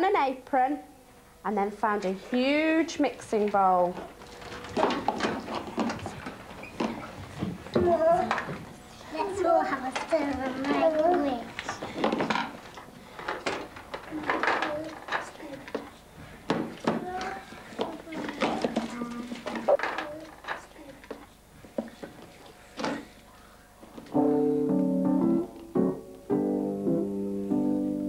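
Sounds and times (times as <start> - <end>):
child voices: 7.8 - 12.0, 14.0 - 16.0, 16.8 - 21.3
music: 24.0 - 28.0.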